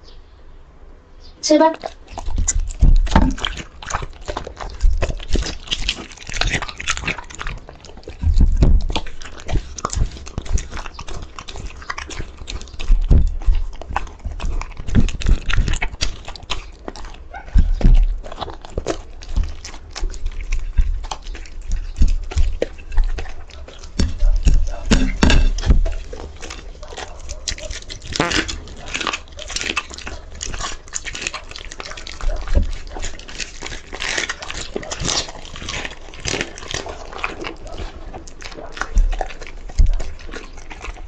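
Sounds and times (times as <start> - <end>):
dog chewing and smacking: 1.5 - 41.0
dog biting loudly: 1.8 - 41.0.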